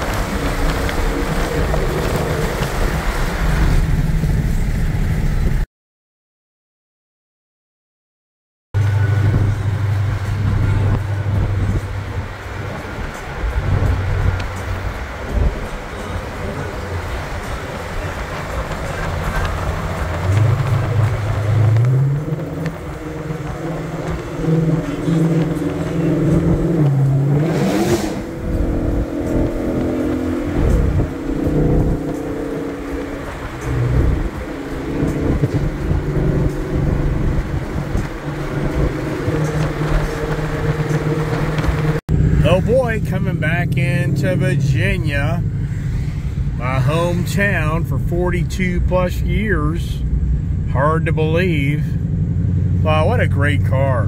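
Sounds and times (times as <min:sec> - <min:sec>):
car engine running while driven: 0:00.0 - 0:05.6, 0:08.8 - 0:54.0
road and tyre noise: 0:00.0 - 0:05.7, 0:08.8 - 0:54.0
rising whoosh: 0:08.8 - 0:42.7.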